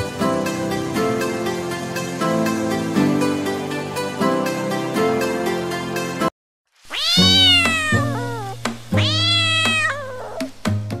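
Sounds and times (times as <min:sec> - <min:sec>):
cat meowing: 0:06.9 - 0:10.6
background music with steady beat: 0:10.4 - 0:11.0.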